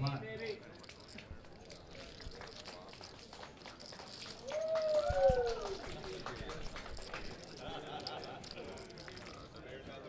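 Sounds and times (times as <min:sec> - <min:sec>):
poker chips clicking: 0:00.3 - 0:09.7.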